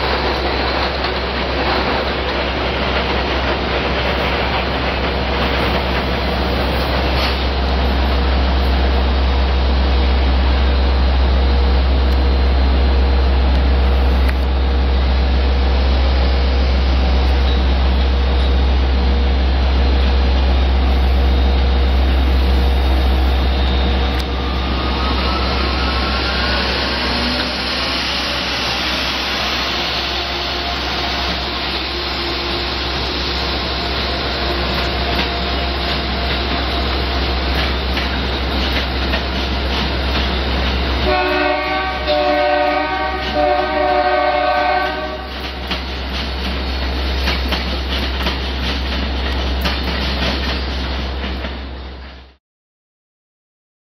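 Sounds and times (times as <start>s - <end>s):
train rumbling past: 0.0s - 52.4s
train horn blasts: 41.0s - 45.4s.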